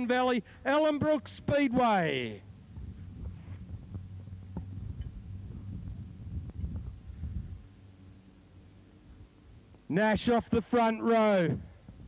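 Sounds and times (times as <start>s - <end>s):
sprint car engines rumbling: 0.0s - 10.8s.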